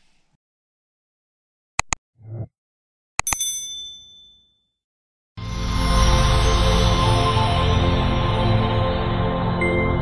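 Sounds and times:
mouse clicks: 0:01.8 - 0:02.0
bright bell ding: 0:03.3 - 0:04.6.

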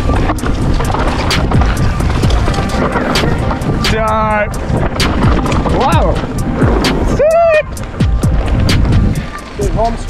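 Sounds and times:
bike clattering over bumps: 0:00.0 - 0:10.0
tyre and wind noise: 0:00.0 - 0:10.0.

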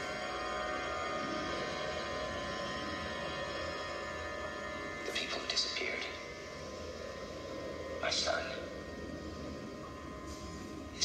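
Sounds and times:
faint hum: 0:00.0 - 0:11.0
steady hiss: 0:00.0 - 0:11.0.

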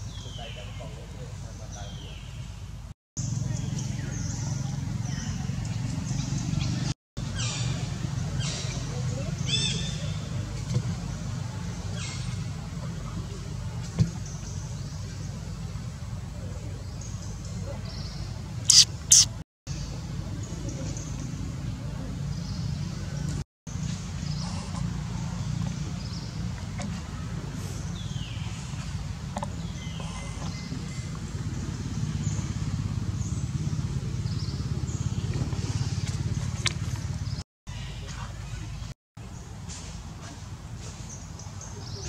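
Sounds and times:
short loud hisses: 0:18.7 - 0:19.4.

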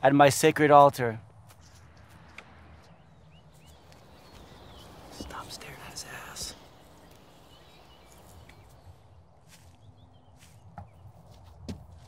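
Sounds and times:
quiet outdoor background: 0:00.0 - 0:12.0
person whispering: 0:05.1 - 0:06.8.

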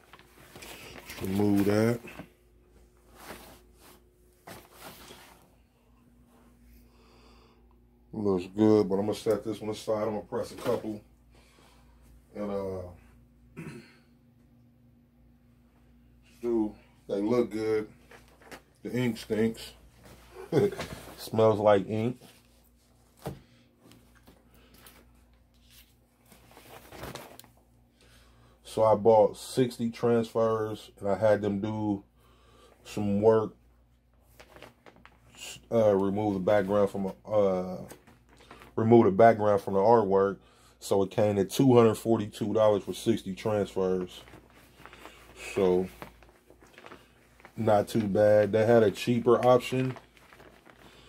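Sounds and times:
fabric rustling: 0:00.0 - 0:06.7, 0:17.2 - 0:27.7, 0:34.1 - 0:35.4, 0:42.0 - 0:51.0
faint steady hum: 0:00.0 - 0:51.0.

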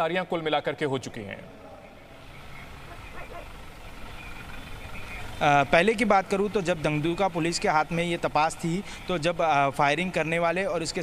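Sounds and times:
street traffic rumble: 0:00.0 - 0:11.0
faint voices: 0:01.3 - 0:05.8.

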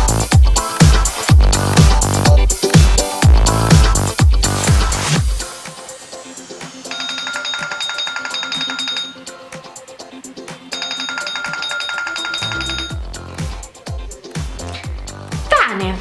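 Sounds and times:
background music with beat: 0:00.0 - 0:16.0
pulsing electronic alarm ringing: 0:06.8 - 0:09.4, 0:10.7 - 0:13.1.

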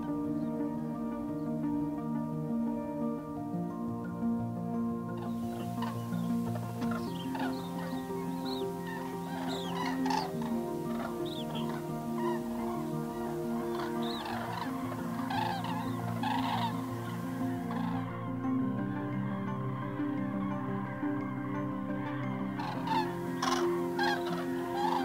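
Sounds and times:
music of held low tones: 0:00.0 - 0:25.0
cranes calling: 0:05.0 - 0:19.2, 0:22.0 - 0:25.0.

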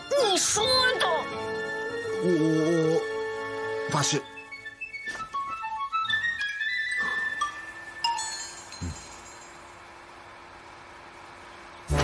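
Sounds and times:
faint hum: 0:05.9 - 0:12.0.

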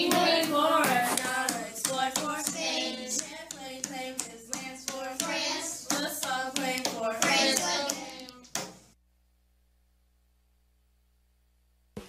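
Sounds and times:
children singing: 0:00.0 - 0:08.6
hands clapping: 0:00.0 - 0:08.9.

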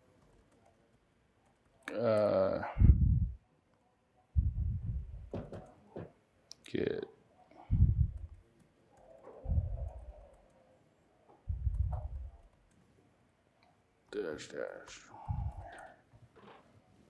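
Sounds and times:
person speaking: 0:01.8 - 0:03.4, 0:11.5 - 0:12.5, 0:14.1 - 0:16.0
dull thuds on microphone: 0:04.8 - 0:06.1.

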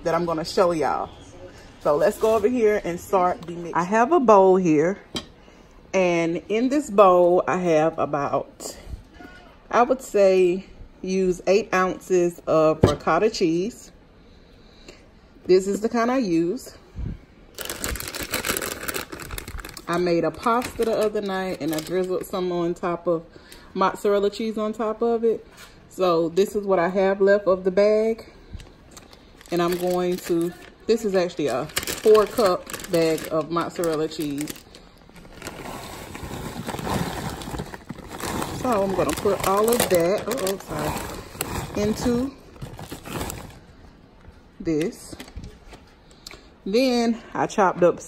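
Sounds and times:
plastic bag crinkling: 0:17.6 - 0:22.3, 0:28.9 - 0:43.8.

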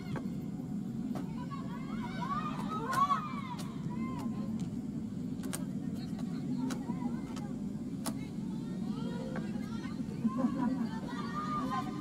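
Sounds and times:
steady low hum: 0:00.0 - 0:12.0
players shouting: 0:01.2 - 0:04.5, 0:08.3 - 0:12.0.

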